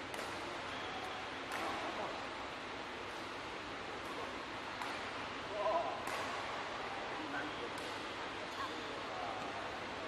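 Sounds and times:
sports hall background hiss: 0.0s - 10.0s.

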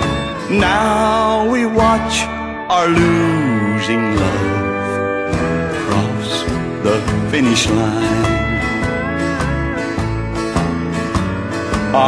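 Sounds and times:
country band guitars over beat: 0.0s - 12.0s.

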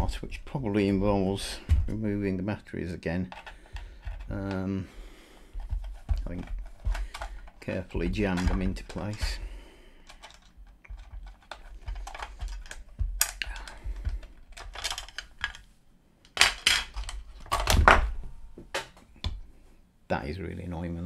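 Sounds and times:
plastic clicking and clattering: 3.3s - 4.7s, 5.6s - 9.4s, 10.0s - 18.0s
batteries rattling: 5.6s - 9.4s, 10.0s - 15.7s.

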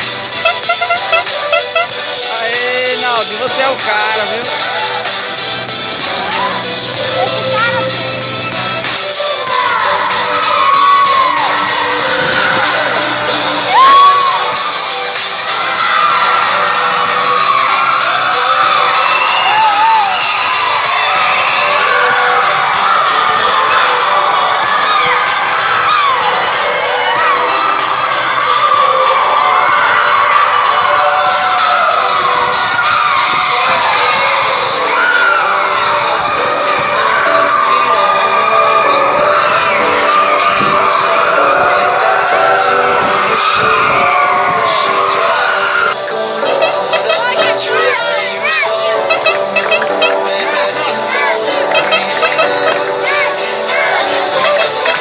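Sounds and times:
children shouting and cheering: 0.0s - 55.0s.

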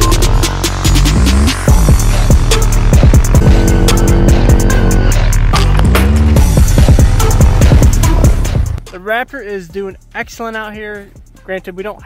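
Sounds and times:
loud electronic music: 0.0s - 12.0s.

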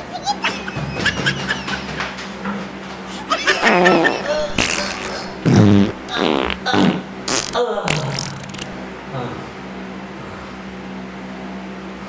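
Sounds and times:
comic fart noises: 3.6s - 8.8s.

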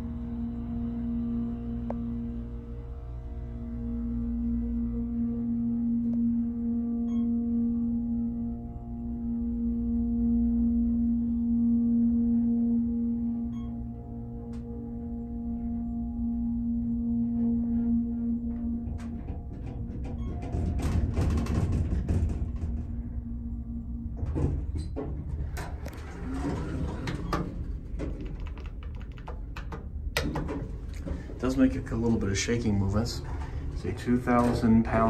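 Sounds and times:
hydraulic elevator pump humming: 0.0s - 35.0s
elevator doors rattling open: 18.6s - 35.0s.

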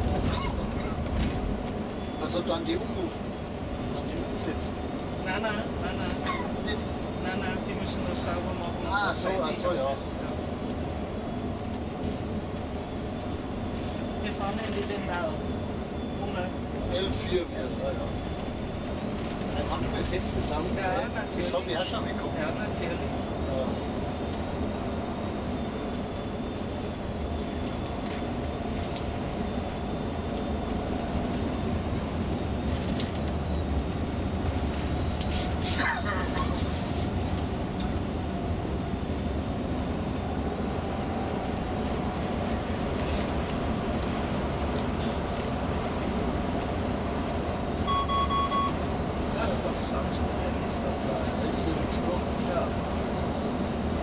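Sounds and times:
coach engine and tyre rumble: 0.0s - 54.0s
short electronic beep: 47.8s - 48.8s.

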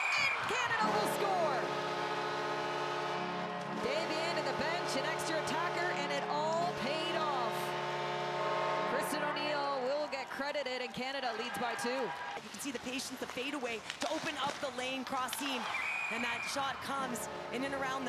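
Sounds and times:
crowd cheering: 0.0s - 4.8s, 6.6s - 12.5s, 15.4s - 18.0s
goal horn: 0.0s - 10.6s, 15.8s - 18.0s.

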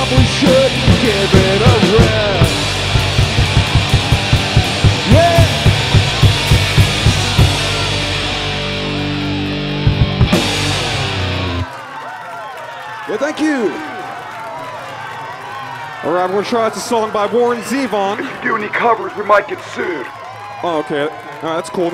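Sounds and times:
rock band playing: 0.0s - 11.7s
drum hits: 0.1s - 8.5s, 9.9s - 11.2s.

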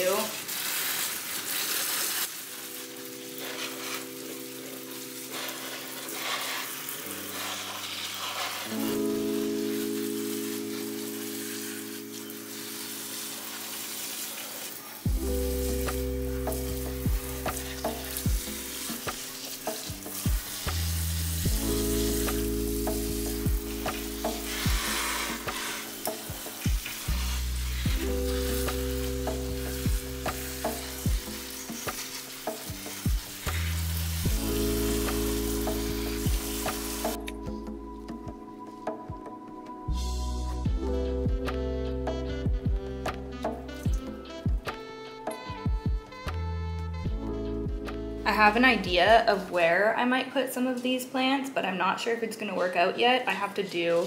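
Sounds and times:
water spraying from faucet sprayer: 0.0s - 37.4s, 53.3s - 54.0s
background music with bass and beat: 15.1s - 49.1s.

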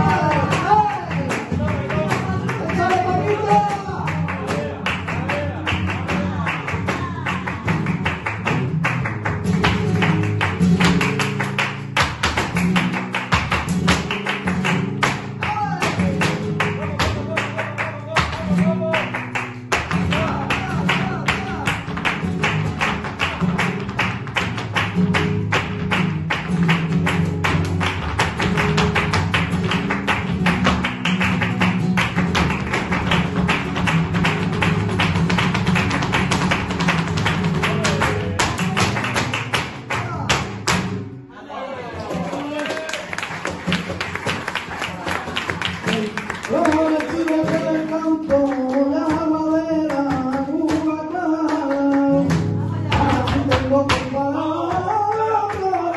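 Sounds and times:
flamenco guitar: 0.0s - 55.9s
sharp percussive taps: 5.8s - 41.0s.

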